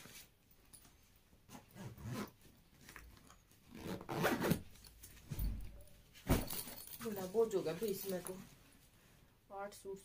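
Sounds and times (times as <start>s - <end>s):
backpack zipper being pulled: 1.5s - 2.4s, 3.7s - 4.6s.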